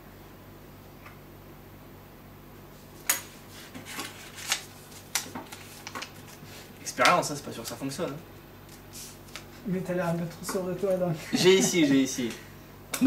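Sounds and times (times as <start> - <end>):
paper crinkling as folded: 3.6 - 6.7.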